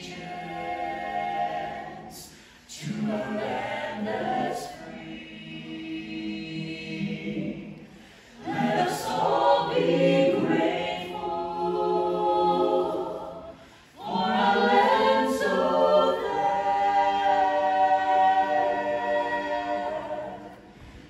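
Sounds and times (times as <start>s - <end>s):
vocal ensemble singing in harmony: 0.0s - 21.0s.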